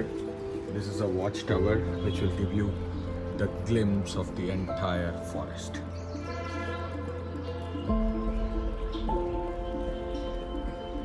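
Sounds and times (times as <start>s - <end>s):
background music sustained chords: 0.0s - 11.0s.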